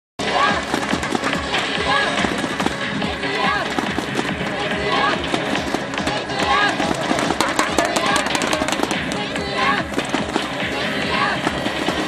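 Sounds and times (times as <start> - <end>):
background music: 0.2 - 12.0.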